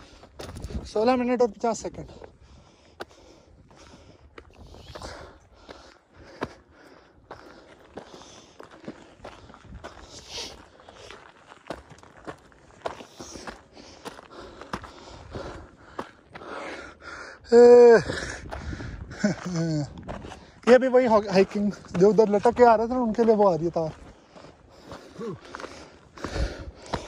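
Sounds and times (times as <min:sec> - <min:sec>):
footsteps on rocky dirt trail: 0:00.0 - 0:27.0.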